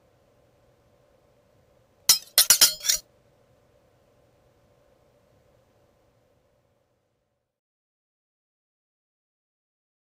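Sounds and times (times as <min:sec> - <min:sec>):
sharp metallic sword clinks: 0:02.1 - 0:03.0.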